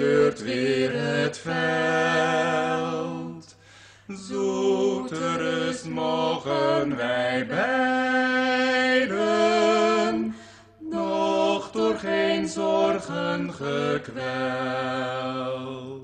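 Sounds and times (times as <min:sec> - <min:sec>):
singer's breath: 0:03.5 - 0:04.1, 0:10.3 - 0:10.8
person singing slowly: 0:04.1 - 0:06.6.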